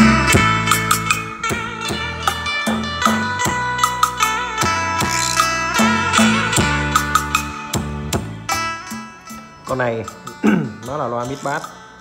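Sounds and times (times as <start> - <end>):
music through small speaker: 0.0 - 12.0.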